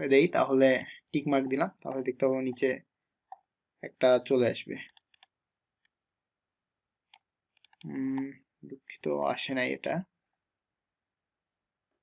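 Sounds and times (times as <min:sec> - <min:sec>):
computer mouse clicks: 0:04.9 - 0:06.0, 0:07.1 - 0:08.3.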